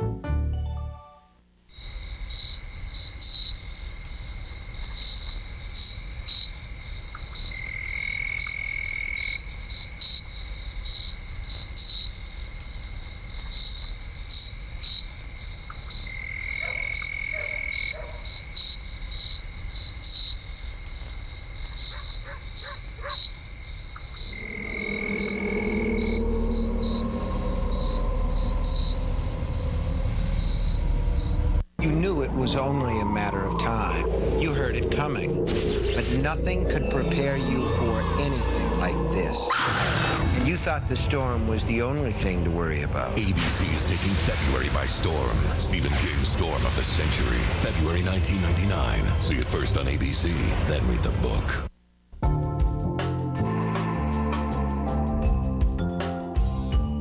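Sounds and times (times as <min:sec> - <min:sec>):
higher insect call: 0:01.7 - 0:31.6, 0:32.2 - 0:40.3
insects chirping at night: 0:01.7 - 0:40.3
lower pitched sound: 0:24.1 - 0:40.4.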